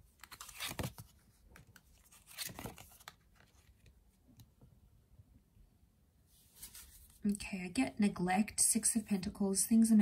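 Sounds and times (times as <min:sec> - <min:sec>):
cards rustling and sliding: 0:00.0 - 0:03.9, 0:06.5 - 0:07.2.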